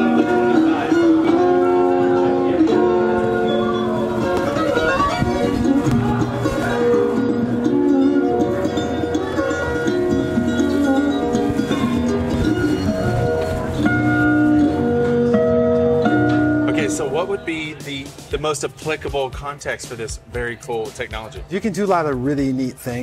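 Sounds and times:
plucked strings: 0.0 - 22.2
instrumental music over loudspeaker: 0.0 - 23.0.

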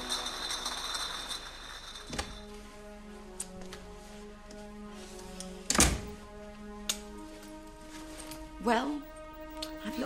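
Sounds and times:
glass bottles clinking: 0.0 - 2.5.

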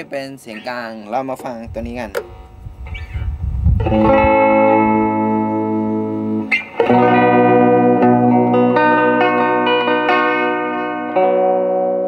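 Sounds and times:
electric guitar chord ringing: 3.8 - 12.0.

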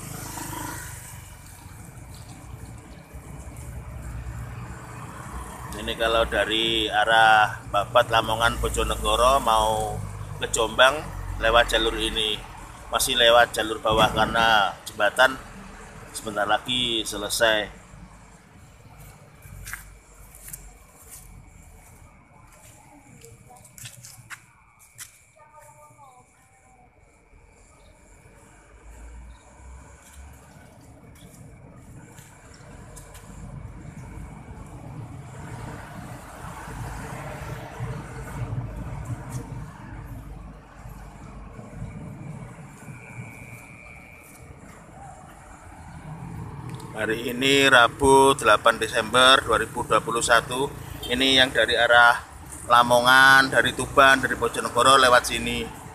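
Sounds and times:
passing vehicles rumble: 0.0 - 55.9.

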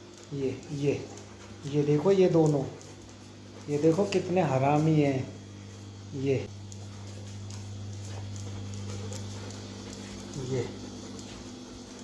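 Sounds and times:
dog claws clicking on floor: 0.0 - 12.0
steady low hum: 0.0 - 12.0.

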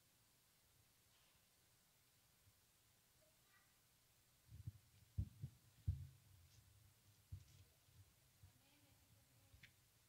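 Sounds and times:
faint low hum: 0.0 - 10.0
dull low handling thumps: 4.5 - 6.4.

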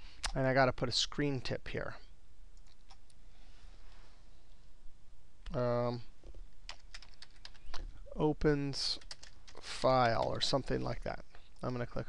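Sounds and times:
computer keyboard typing: 6.7 - 7.8, 8.8 - 10.6.

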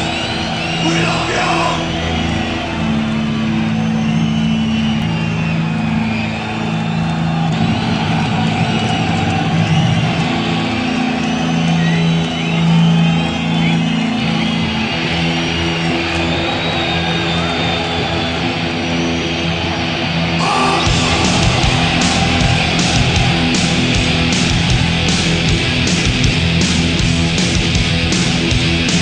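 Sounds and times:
crowd yelling and whistling: 0.0 - 29.0.

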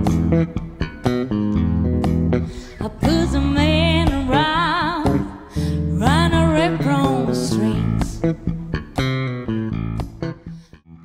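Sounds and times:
electric bass guitar: 0.0 - 11.0
woman singing blues: 2.5 - 8.4.

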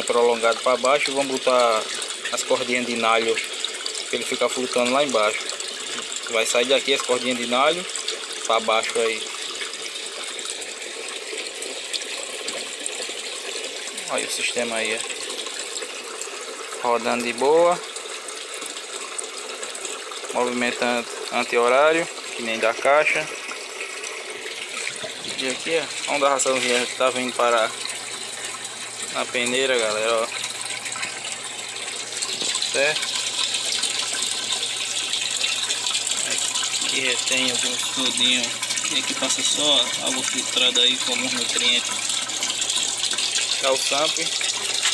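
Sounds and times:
water rushing in fish tank: 0.0 - 44.9.

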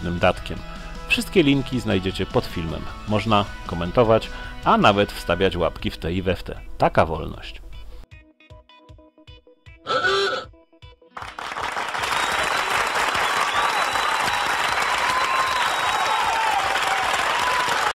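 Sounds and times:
short loud vocal sound: 9.9 - 10.5
crowd applause and cheers: 11.2 - 18.0.

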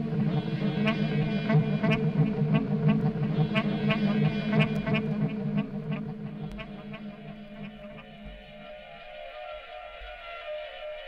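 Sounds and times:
low synthesizer drones: 0.0 - 9.3.

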